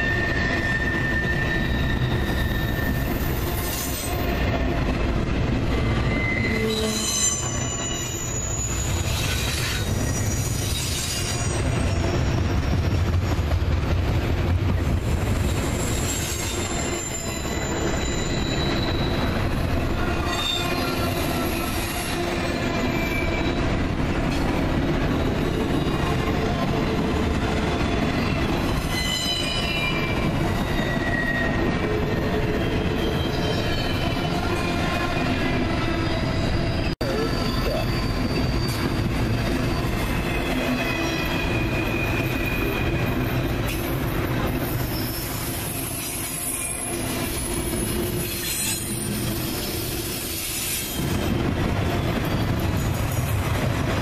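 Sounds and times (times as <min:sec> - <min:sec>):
high wheel squeals: 0:00.0 - 0:04.2, 0:05.7 - 0:12.8, 0:15.6 - 0:23.7, 0:28.1 - 0:43.8
train wheels rumbling on rail: 0:00.0 - 0:54.0.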